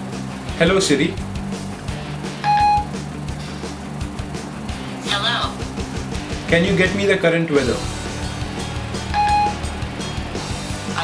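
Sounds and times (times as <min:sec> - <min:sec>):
background music: 0:00.0 - 0:11.0
short beep: 0:02.4 - 0:02.9, 0:09.2 - 0:09.6.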